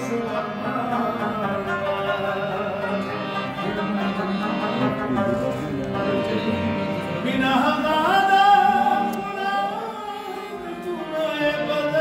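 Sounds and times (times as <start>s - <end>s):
plucked lute melody: 0.7s - 9.4s.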